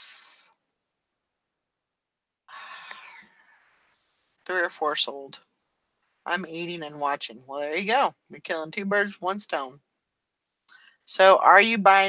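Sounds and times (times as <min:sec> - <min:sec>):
breathy exhale: 0:02.5 - 0:03.6.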